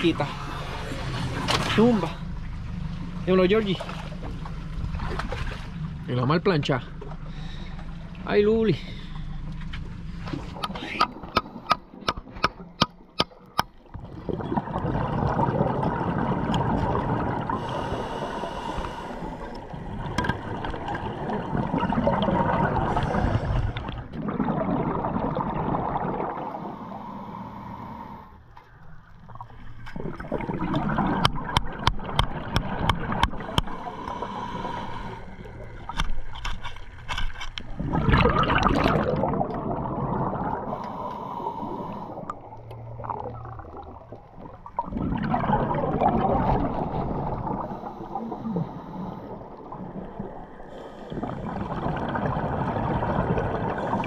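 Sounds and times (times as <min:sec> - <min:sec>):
exhaled bubbles rushing underwater: 0:10.3 - 0:28.2, 0:28.8 - 0:36.1, 0:37.7 - 0:54.0.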